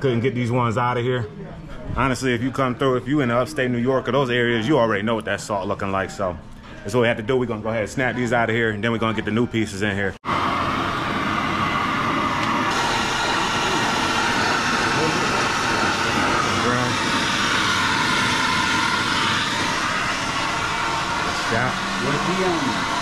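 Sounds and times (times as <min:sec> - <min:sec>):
cutting torch hissing: 0:10.2 - 0:23.0.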